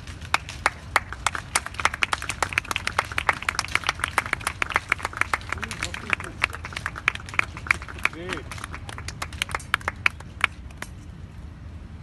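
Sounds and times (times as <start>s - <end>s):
people clapping: 0.0s - 11.0s.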